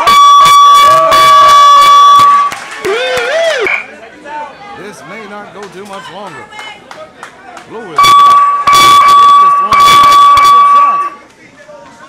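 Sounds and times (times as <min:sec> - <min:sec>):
boxing ring bell ringing: 0:08.0 - 0:11.2.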